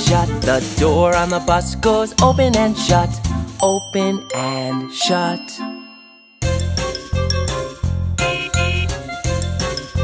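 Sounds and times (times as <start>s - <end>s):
repeated chords over bass line: 6.4s - 10.0s.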